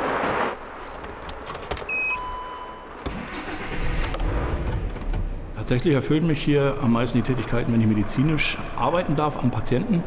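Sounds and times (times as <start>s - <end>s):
diesel engine starting and running: 1.9s - 10.0s.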